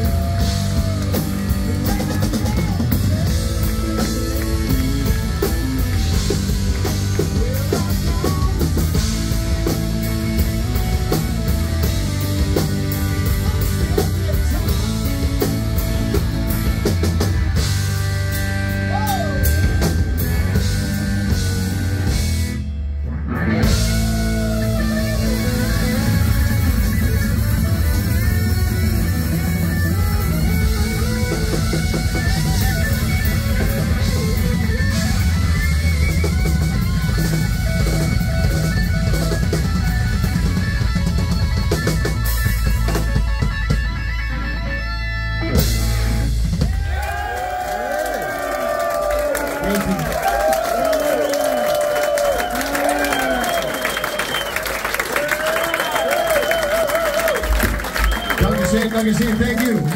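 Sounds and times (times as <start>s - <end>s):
bass guitar: 0.0s - 59.9s
drum kit: 0.0s - 59.9s
electric guitars: 0.0s - 59.9s.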